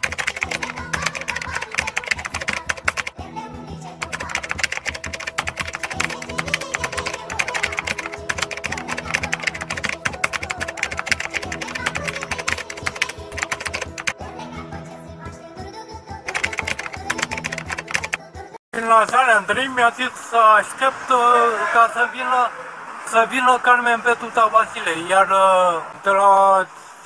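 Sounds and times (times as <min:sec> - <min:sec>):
rapid keyboard typing: 0:00.0 - 0:03.2, 0:04.0 - 0:14.2, 0:16.3 - 0:18.2
background music with chords: 0:00.0 - 0:18.6.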